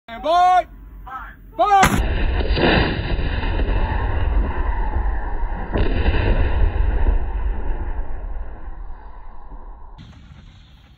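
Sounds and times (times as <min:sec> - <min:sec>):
heavy low rumble: 0:00.7 - 0:10.9
sharp crack: 0:01.6 - 0:10.9
artillery gun firing: 0:01.8 - 0:10.9.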